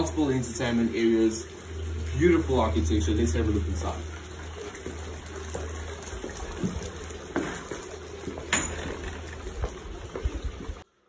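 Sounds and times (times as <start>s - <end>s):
water running and splashing: 0.0s - 10.9s
footsteps on concrete: 4.8s - 10.7s.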